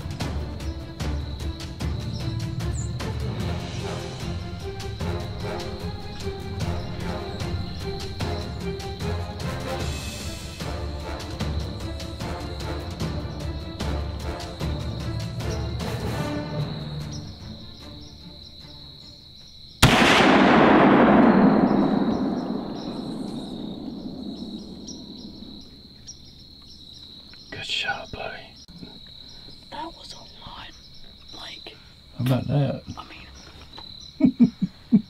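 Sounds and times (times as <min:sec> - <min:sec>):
rifle shot with rolling echo: 0:19.8 - 0:25.9.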